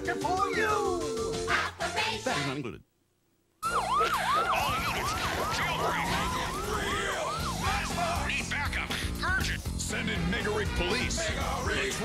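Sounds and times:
police siren yelping: 3.6s - 8.3s.

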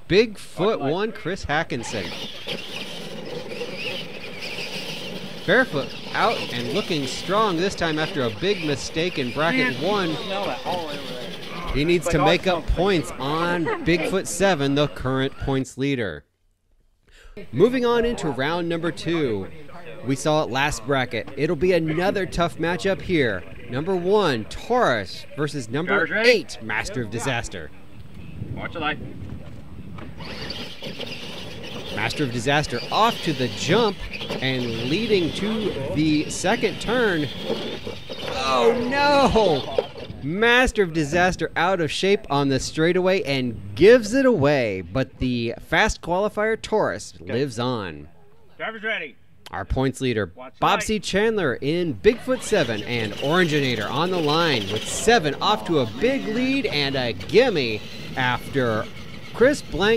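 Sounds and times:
toy truck motors whining: 1.3s - 15.2s, 30.0s - 42.7s, 51.2s - 59.9s.

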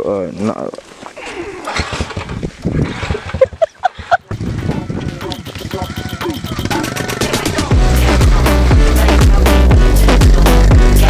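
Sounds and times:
person laughing: 2.9s - 7.7s.

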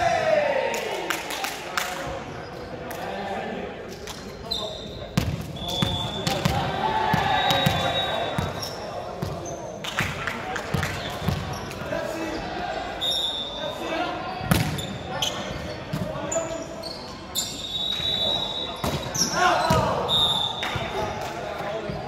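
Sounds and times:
players' voices echoing: 0.0s - 22.0s
sneaker squeaks: 4.2s - 9.8s, 10.7s - 12.5s, 13.1s - 22.0s.

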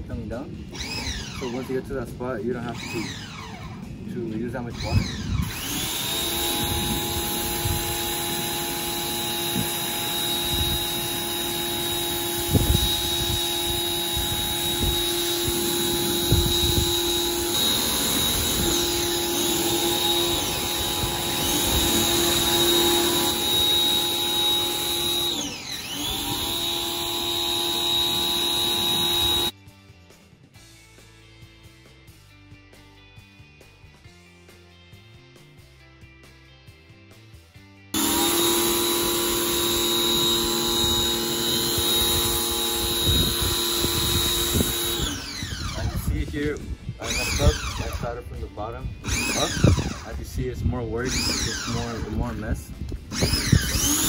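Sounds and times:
pressure washer motor hum: 4.8s - 29.5s, 38.0s - 48.2s, 49.0s - 50.2s, 51.1s - 52.4s, 53.0s - 54.0s.

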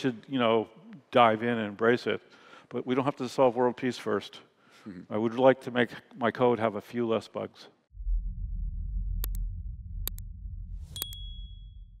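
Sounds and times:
low drone: 7.9s - 12.0s
high bell-like ding: 10.9s - 11.9s.

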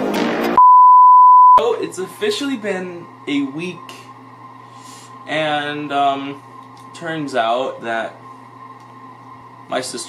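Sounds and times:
censor beep: 0.6s - 1.6s.

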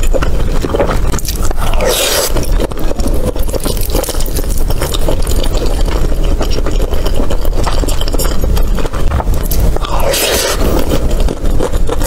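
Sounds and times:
chewing rice: 0.0s - 12.0s
wet mouth clicks: 3.4s - 12.0s.

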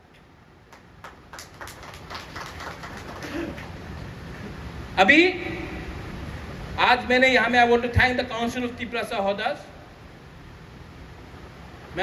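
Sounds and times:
audience clapping: 0.7s - 3.8s.

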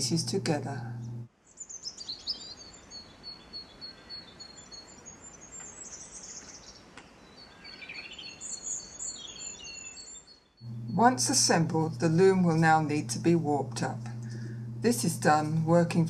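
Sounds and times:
small birds chirping: 1.5s - 11.0s.

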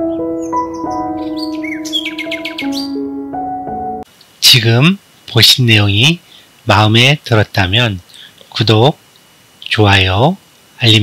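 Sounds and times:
birds chirping: 0.0s - 4.0s
background music of held notes: 0.0s - 4.1s.

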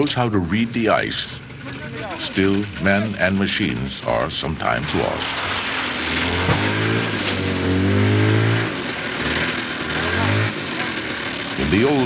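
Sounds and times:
snowmobile engine revving: 0.0s - 12.0s.

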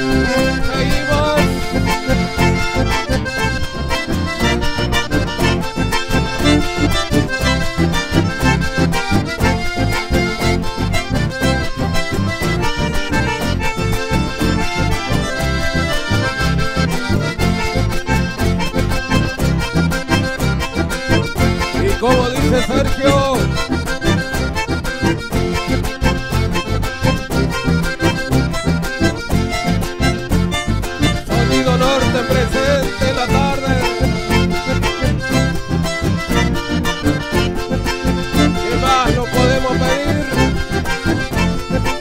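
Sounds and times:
accordion-led folk music: 0.0s - 42.0s.

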